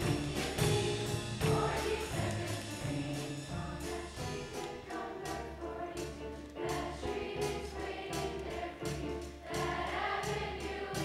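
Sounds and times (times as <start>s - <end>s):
choir singing with accompaniment: 0.0s - 11.0s
percussive beat: 0.0s - 11.0s.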